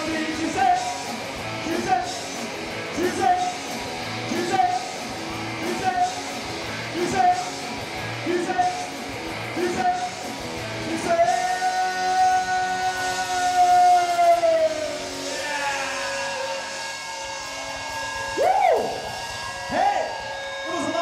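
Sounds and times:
live rock band: 0.0s - 21.0s
singer yelling: 2.9s - 3.7s, 4.3s - 5.0s, 5.6s - 6.3s, 6.9s - 7.6s, 9.5s - 10.2s, 10.8s - 21.0s.

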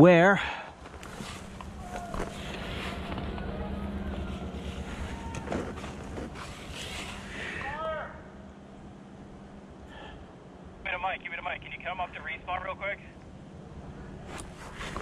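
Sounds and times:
low steady hum: 0.0s - 15.0s
faint distant voices: 1.7s - 6.4s.

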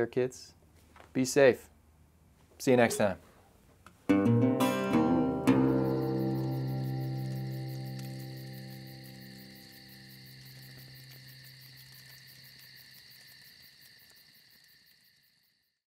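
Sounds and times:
acoustic guitar chord ringing: 4.1s - 11.3s
crickets chirping: 5.3s - 15.9s.

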